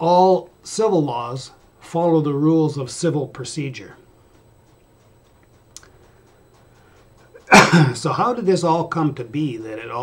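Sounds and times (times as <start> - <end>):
man speaking: 0.0 - 4.1, 7.5 - 10.0
man sneezing: 7.5 - 8.0.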